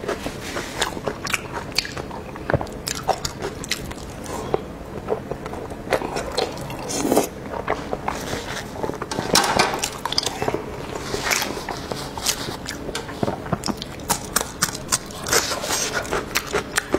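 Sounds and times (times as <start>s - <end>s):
person chewing with wet clicks: 0.0s - 8.2s, 9.8s - 10.6s, 11.2s - 16.9s.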